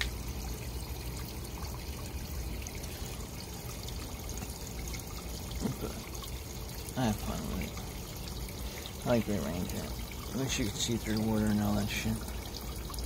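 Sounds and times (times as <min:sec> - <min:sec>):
water trickling into basin: 0:00.0 - 0:13.0.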